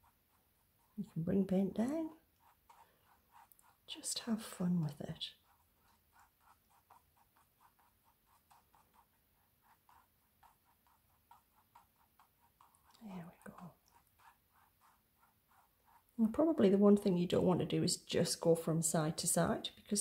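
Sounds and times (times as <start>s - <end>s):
mop brush swishing on canvas: 0.0s - 18.5s.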